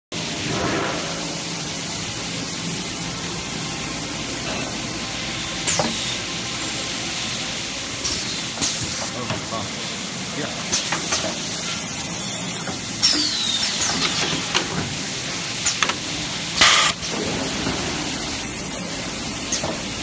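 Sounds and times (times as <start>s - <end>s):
packing machine running: 13.1s - 19.3s.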